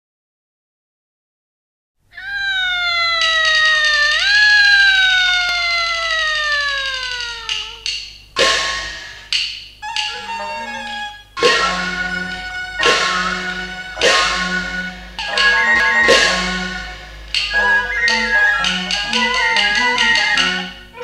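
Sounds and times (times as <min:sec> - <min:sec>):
percussion crashes: 0:06.3 - 0:09.8, 0:11.4 - 0:20.7.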